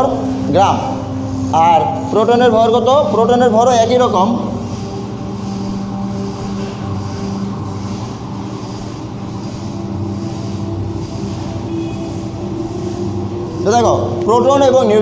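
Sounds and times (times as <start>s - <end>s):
low machine hum with pitched tones: 0.0s - 15.0s.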